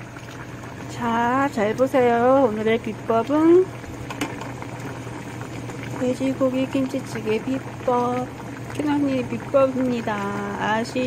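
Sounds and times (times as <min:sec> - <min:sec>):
low steady hum: 0:00.0 - 0:11.0
stew bubbling at a boil: 0:00.0 - 0:11.0.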